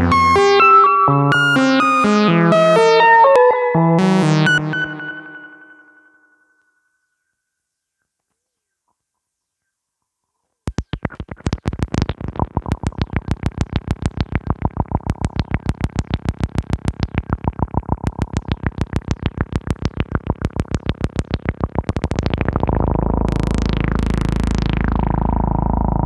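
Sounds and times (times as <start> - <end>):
fast repeated synth notes: 0.0 - 5.9, 10.7 - 26.0.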